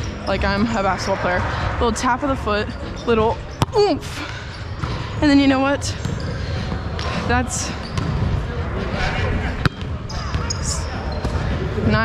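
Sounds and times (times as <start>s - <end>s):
echoing gym noise: 0.0s - 12.0s.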